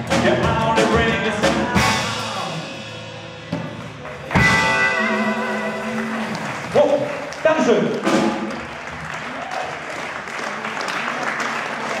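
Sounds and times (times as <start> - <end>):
crowd voices: 0.0 - 12.0
audience applauding: 4.0 - 12.0.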